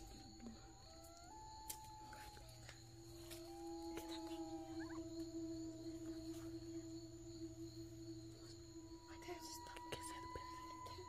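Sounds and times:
high-pitched whines: 0.0s - 11.0s
low humming tone: 0.0s - 11.0s.

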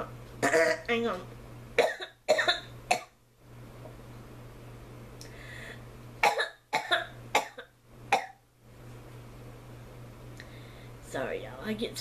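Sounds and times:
woman coughing: 0.4s - 0.8s, 1.8s - 3.1s, 6.2s - 8.4s.

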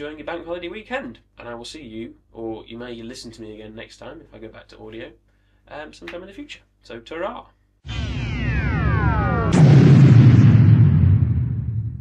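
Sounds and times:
deep boom with low rumble: 7.9s - 12.0s
synthesized falling sweep: 7.9s - 12.0s.

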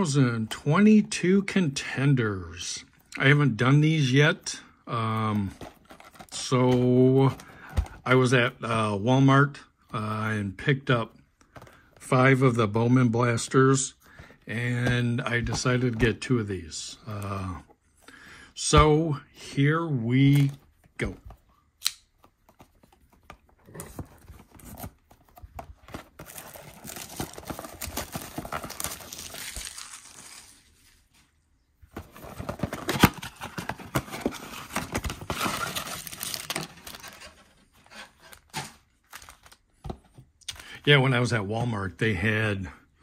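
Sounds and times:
plastic shrink-wrap tearing: 27.9s - 30.6s.

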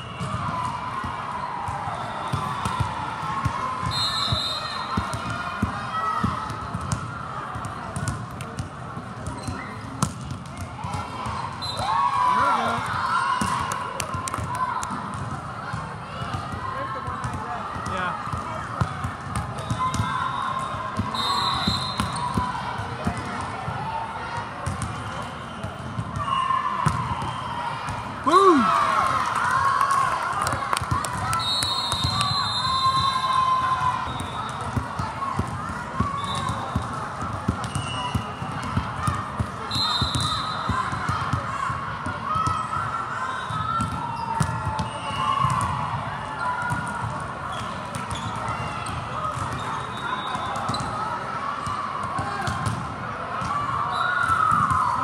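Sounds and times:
crowd chatter: 0.0s - 55.0s
players shouting: 10.8s - 14.9s, 26.2s - 36.6s
volleyball hits: 24.4s - 33.2s.

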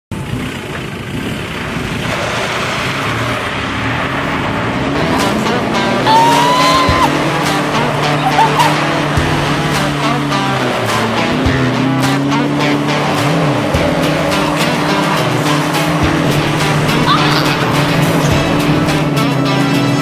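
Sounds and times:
diesel engine revving: 0.1s - 20.0s
tyres spinning in loose dirt: 0.2s - 20.0s
music: 4.8s - 20.0s.

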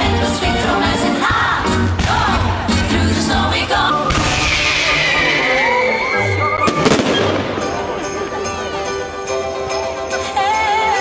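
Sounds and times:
music playing: 0.0s - 11.0s
fireworks bangs: 6.6s - 8.4s.

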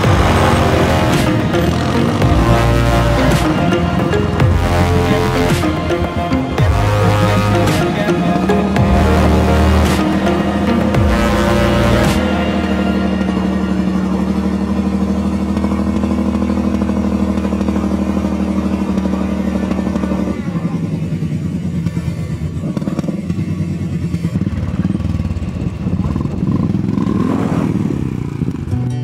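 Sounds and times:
background music: 0.0s - 22.2s
motorcycle engine revving: 0.0s - 29.0s.

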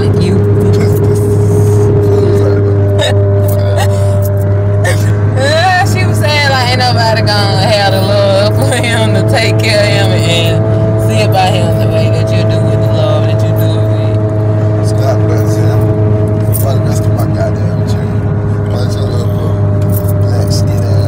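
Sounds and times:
car cabin drone: 0.0s - 21.0s
indistinct voices: 0.0s - 21.0s
music playing: 0.0s - 21.0s.

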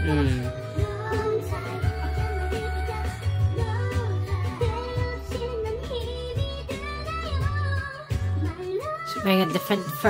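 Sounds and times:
low bass line: 0.0s - 1.1s.

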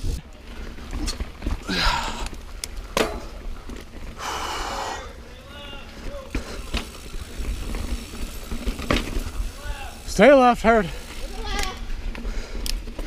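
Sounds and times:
wind and ground rumble: 0.0s - 13.0s
bike knocking and rattling: 0.3s - 13.0s.

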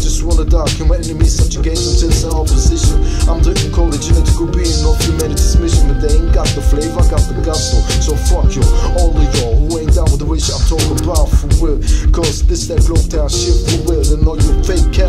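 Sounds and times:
drum beat with heavy bass: 0.0s - 15.0s
rapping over a beat: 0.0s - 15.0s.

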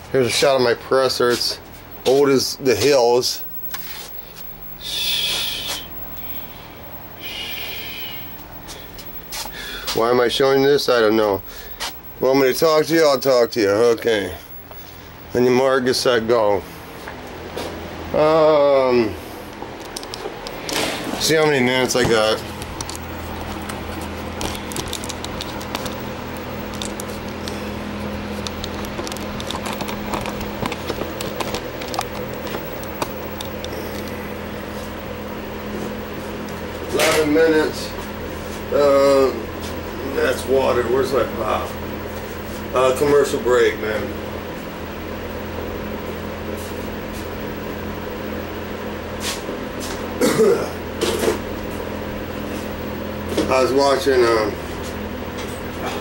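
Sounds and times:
fan noise: 0.0s - 56.0s
machine hum: 0.0s - 56.0s.

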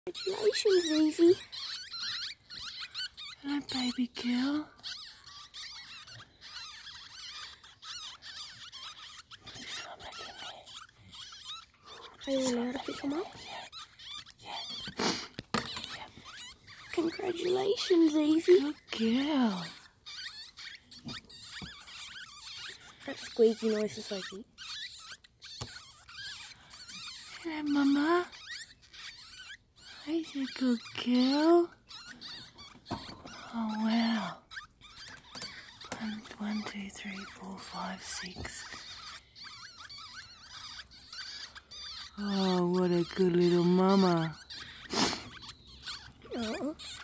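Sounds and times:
ferret kits squeaking: 0.0s - 47.0s.

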